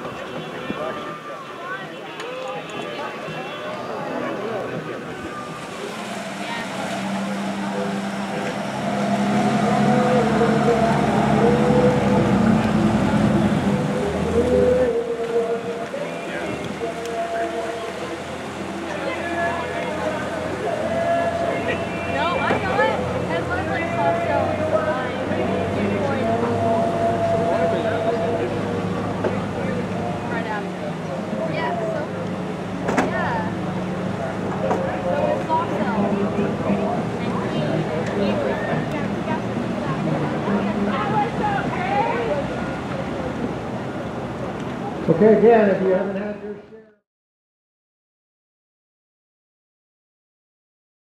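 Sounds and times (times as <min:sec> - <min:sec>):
boat engines running: 0:00.0 - 0:46.5.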